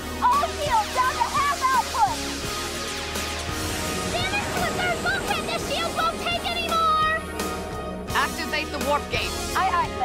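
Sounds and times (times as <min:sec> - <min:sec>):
background music: 0:00.0 - 0:10.0
warbling chirps: 0:01.2 - 0:08.2.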